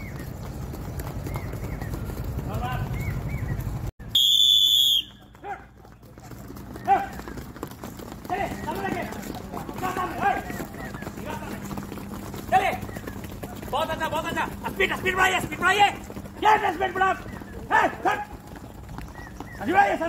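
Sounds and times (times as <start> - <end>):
feet stamping on dirt: 0.0 - 20.0
people shouting: 14.2 - 18.4.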